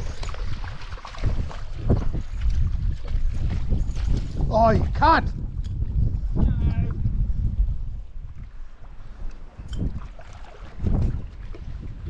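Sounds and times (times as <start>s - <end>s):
wind rumbling on microphone: 0.0s - 12.0s
fish splashing in water: 9.9s - 11.0s.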